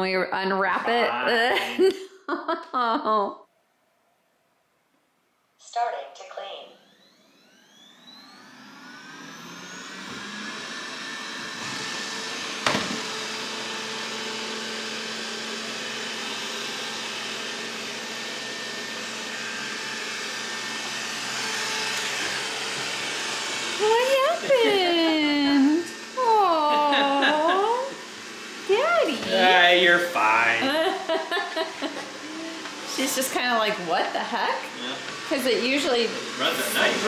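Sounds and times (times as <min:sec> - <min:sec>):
robot vacuum fan whining: 0:05.8 - 0:37.0.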